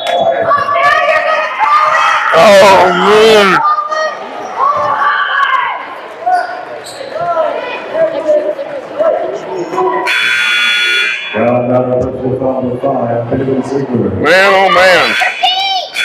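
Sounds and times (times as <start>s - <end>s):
spectators' voices and shouts: 0.0s - 16.0s
scoreboard buzzer: 10.1s - 11.4s, 15.0s - 16.0s.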